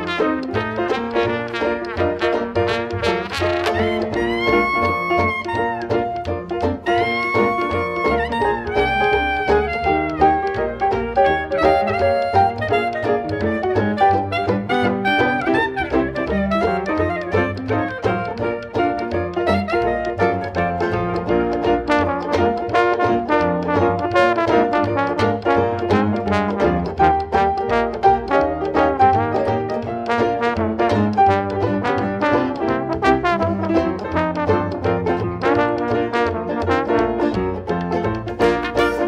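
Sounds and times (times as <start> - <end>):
jazz band playing blues: 0.0 - 39.0.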